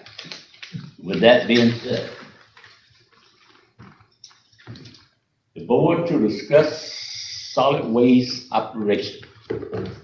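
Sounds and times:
man talking: 0:00.8 - 0:02.4, 0:05.6 - 0:09.3.

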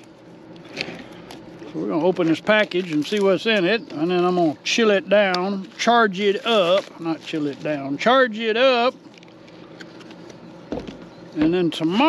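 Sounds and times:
faint background hum: 0:00.0 - 0:12.0.

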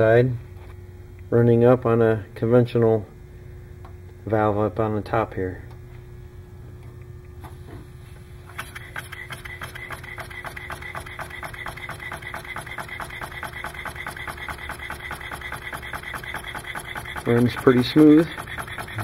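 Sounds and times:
air engine clicks and puffs: 0:08.4 - 0:19.0.

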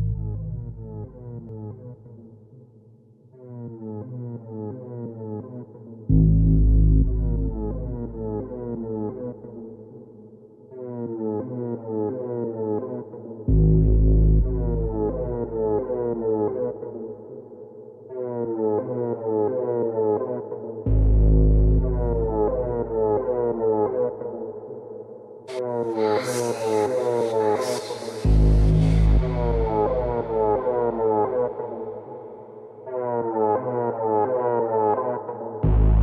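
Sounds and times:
low steady drone: 0:00.0 - 0:01.5, 0:27.7 - 0:32.1
synthesizer riff: 0:25.7 - 0:31.4.

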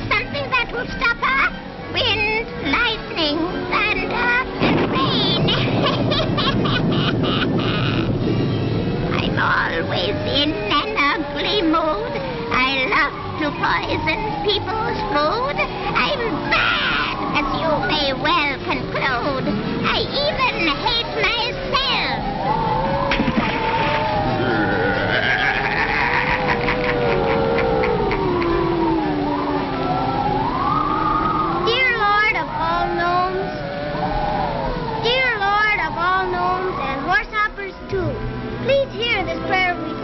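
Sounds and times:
cartoon bird squawks: 0:07.3 - 0:08.2, 0:25.0 - 0:28.2
cartoon cat meowing: 0:24.8 - 0:26.7.

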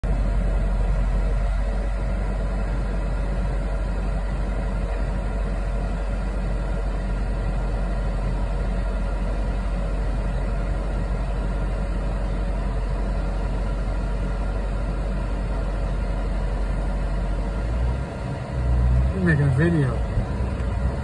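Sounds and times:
idling engine rumble in vehicle cab: 0:00.0 - 0:21.0.

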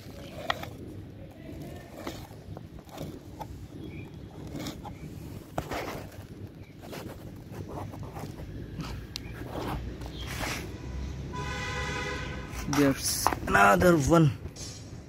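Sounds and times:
low background rumble: 0:00.0 - 0:15.0.

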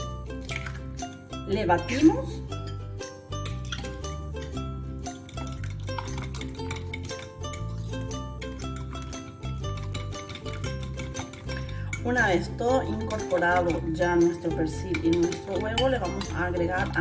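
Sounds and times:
background music with bass line: 0:00.0 - 0:17.0
fork clinking against bowl: 0:05.2 - 0:12.0, 0:14.8 - 0:17.0.

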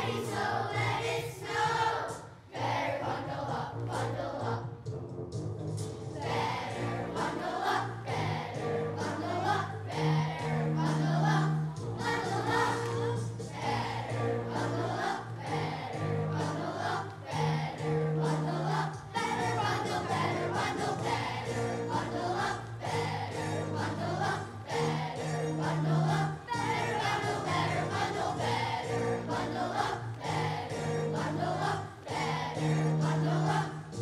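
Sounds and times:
children's choir singing: 0:00.0 - 0:04.8, 0:06.1 - 0:34.0
accompaniment with steady beat: 0:03.3 - 0:34.0.

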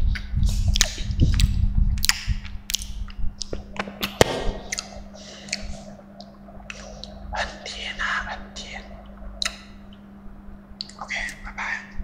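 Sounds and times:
steady low hum: 0:00.0 - 0:12.0
man whispering: 0:07.3 - 0:09.0, 0:11.0 - 0:12.0.

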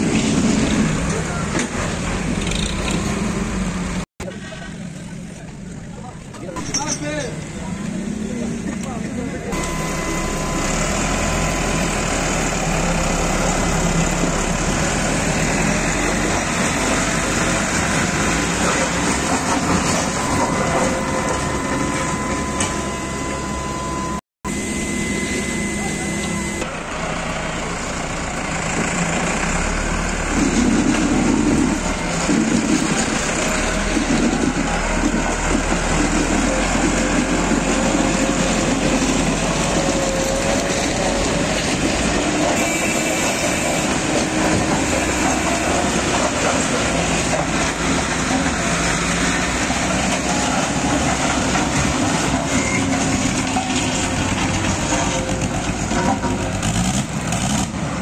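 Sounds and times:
diesel tractor engines running: 0:00.0 - 0:58.0.

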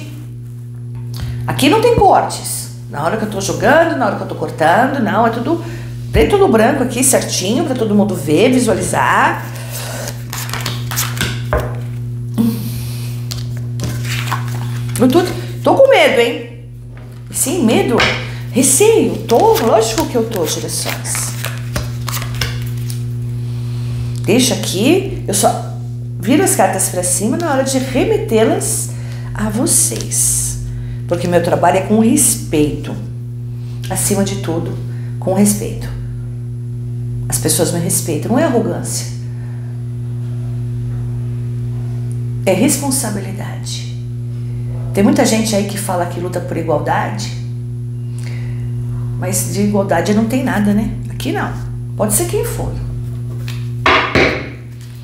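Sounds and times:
steady low hum: 0:00.0 - 0:55.0
cards sliding rustle: 0:09.5 - 0:11.7, 0:13.3 - 0:15.0, 0:19.5 - 0:23.0
cards knocking on a table: 0:10.5 - 0:11.8, 0:53.9 - 0:54.6.

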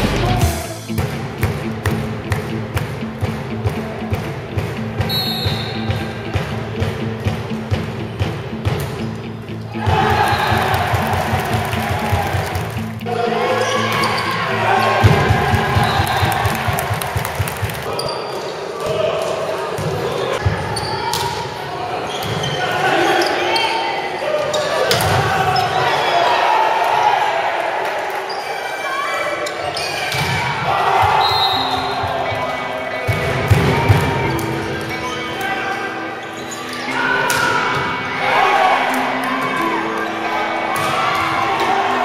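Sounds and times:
crowd voices: 0:00.0 - 0:42.0
players shouting: 0:09.7 - 0:42.0.

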